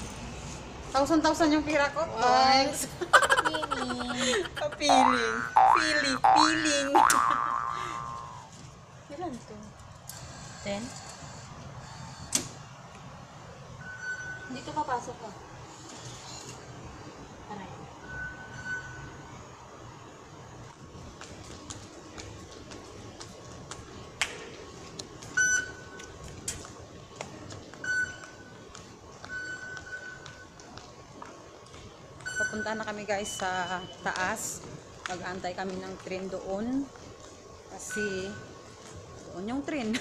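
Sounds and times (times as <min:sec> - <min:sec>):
low background hum: 0:00.0 - 0:40.0.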